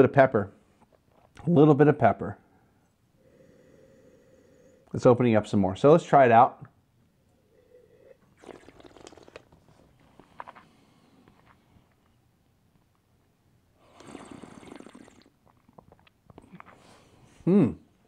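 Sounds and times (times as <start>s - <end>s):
airy breath: 2.5s - 4.9s
person slurping wine: 7.5s - 9.5s, 13.8s - 16.9s
wet mouth clicks: 8.4s - 9.5s.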